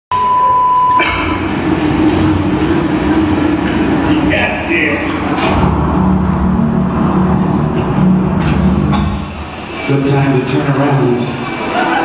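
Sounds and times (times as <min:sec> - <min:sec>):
short high beep: 0:00.1 - 0:01.2
dense rumble with low tone: 0:01.0 - 0:10.9.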